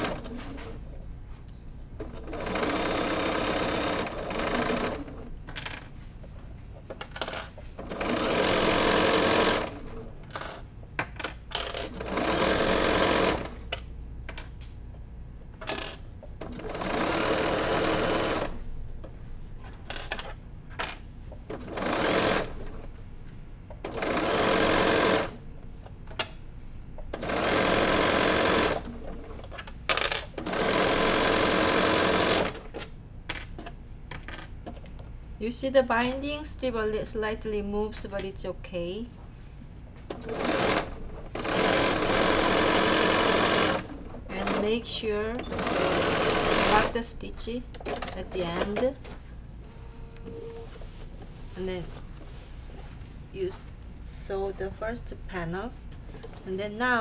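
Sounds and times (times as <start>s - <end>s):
sewing machine stitching: 2.0s - 5.3s, 7.2s - 10.1s, 11.5s - 13.6s, 15.6s - 18.6s, 21.5s - 22.8s, 23.8s - 25.4s, 27.2s - 32.8s, 40.1s - 47.0s.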